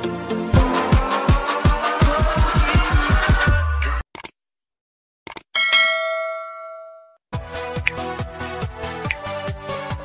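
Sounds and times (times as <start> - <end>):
electronic music with beat: 0.6 - 4.0, 9.0 - 10.0
short clicks: 4.1 - 4.4, 5.2 - 5.5
bell ding: 5.6 - 7.2.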